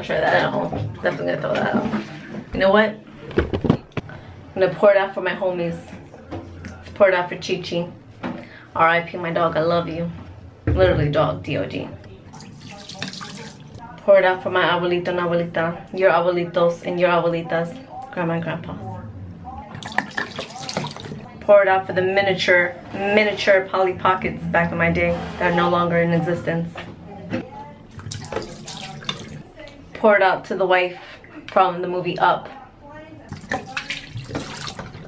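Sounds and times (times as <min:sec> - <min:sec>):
liquid pouring into a sink: 0:12.3 - 0:13.8, 0:19.8 - 0:21.3, 0:27.9 - 0:29.4, 0:33.3 - 0:35.0
water running down drain: 0:12.3 - 0:13.8, 0:19.8 - 0:21.2, 0:27.9 - 0:29.4, 0:33.3 - 0:35.0.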